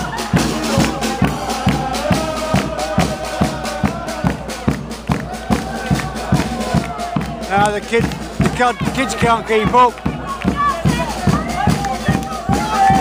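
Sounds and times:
brass band horns: 0.0s - 13.0s
crowd voices: 0.0s - 13.0s
steady drum beat: 0.0s - 13.0s.

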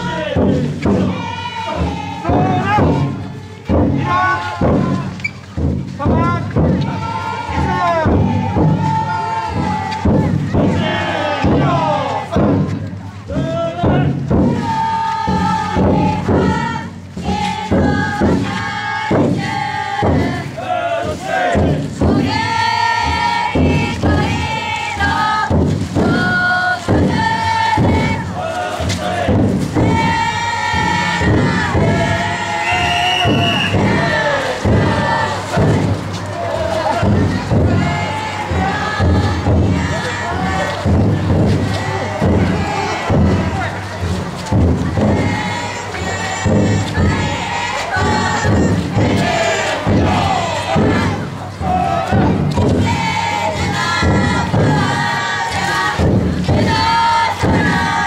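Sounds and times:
group chanting and shouting: 0.0s - 58.0s
large drum beating: 0.0s - 58.0s.

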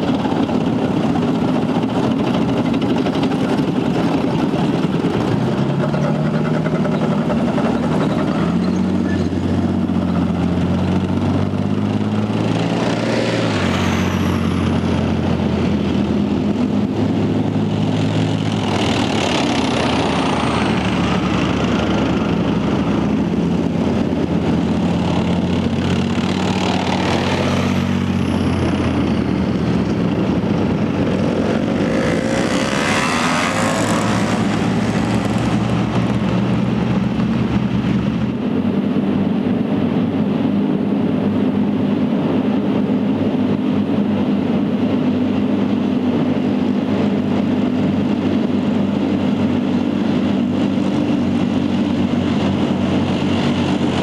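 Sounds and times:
tank diesel engines droning: 0.0s - 54.0s
tank track noise: 0.0s - 54.0s.

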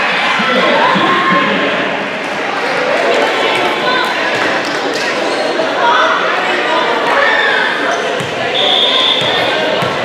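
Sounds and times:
crowd chatter: 0.0s - 10.0s
referee's whistle: 8.5s - 9.6s
volleyball bouncing on wooden floor: 9.2s - 10.0s.

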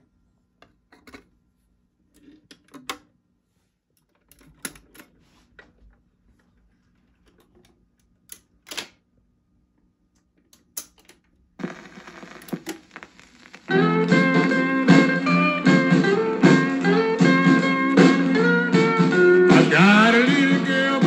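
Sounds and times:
record changer clicks and clunks: 10.5s - 18.3s
record dropping from spindle: 11.6s - 18.3s
record playing: 11.6s - 21.0s.

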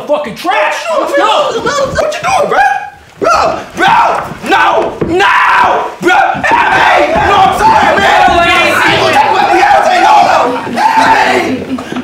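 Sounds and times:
people yelling and screaming: 0.4s - 11.9s.

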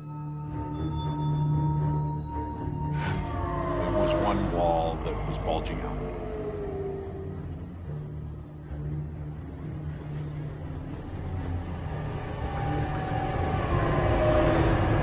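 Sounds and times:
ominous low drone: 0.0s - 15.0s.

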